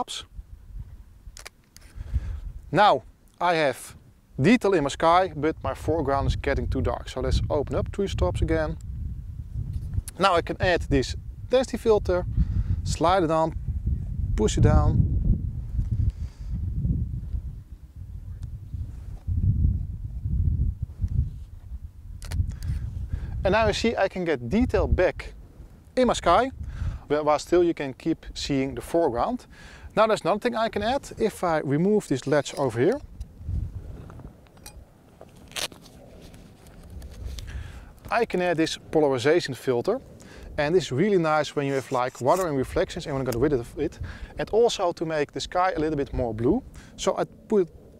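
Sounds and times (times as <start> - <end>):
wind buffeting microphone: 0.0 - 2.7, 4.4 - 47.9
lens filter clicks and clinks: 22.2 - 22.8.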